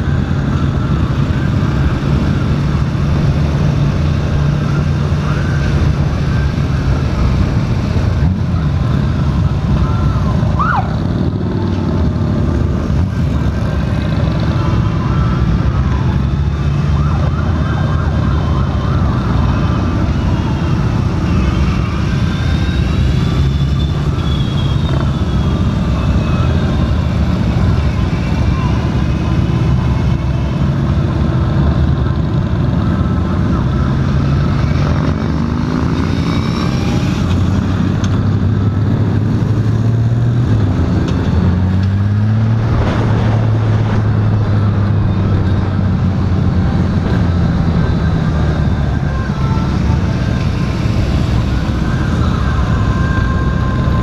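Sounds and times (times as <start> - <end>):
other motorcycles: 0.0 - 54.0
siren wailing: 0.0 - 54.0
wind noise: 37.4 - 54.0.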